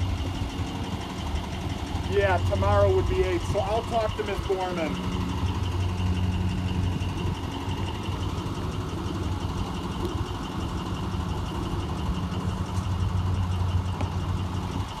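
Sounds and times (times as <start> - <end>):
bus engine driving past: 0.0 - 15.0.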